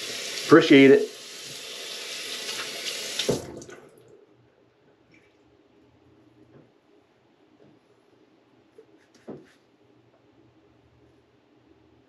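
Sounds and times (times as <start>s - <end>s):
sink tap running: 0.0s - 3.8s.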